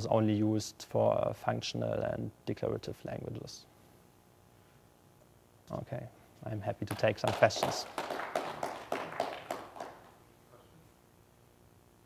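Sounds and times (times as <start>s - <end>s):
small group clapping: 6.9s - 10.2s.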